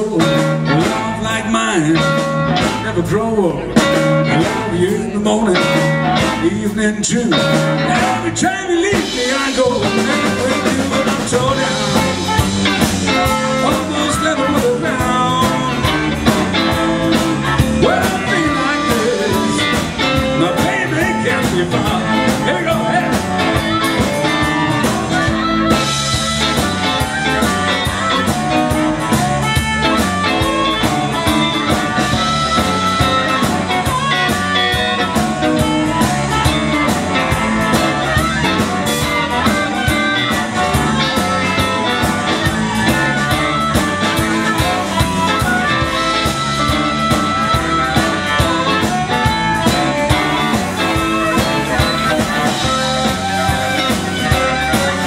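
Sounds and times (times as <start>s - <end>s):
bass guitar: 0.0s - 55.0s
drums: 0.0s - 55.0s
electric guitar: 0.0s - 55.0s
harmonica solo: 9.2s - 55.0s.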